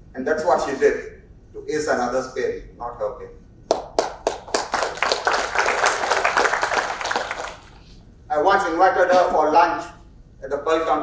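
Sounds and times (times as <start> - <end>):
audience applauding: 3.7 - 7.9.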